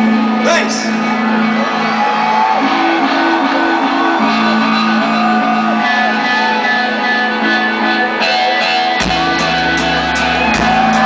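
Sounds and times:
audience shouts and whoops: 0.0 - 11.0
rock band electric guitar riff: 0.0 - 11.0.

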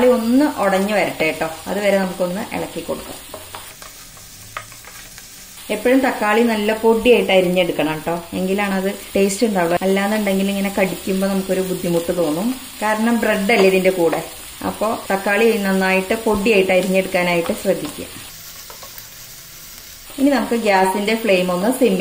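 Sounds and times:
vegetables sizzling in butter: 0.0 - 22.0
wooden spatula scraping a pan: 3.2 - 5.3.

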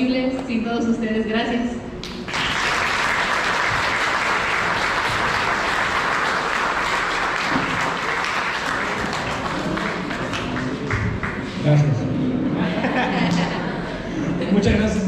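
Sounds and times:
guests applauding: 2.0 - 11.6.

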